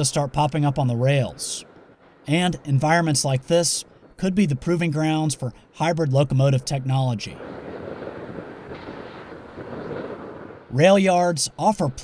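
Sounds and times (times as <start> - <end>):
rail yard rumble: 0.0 - 12.0.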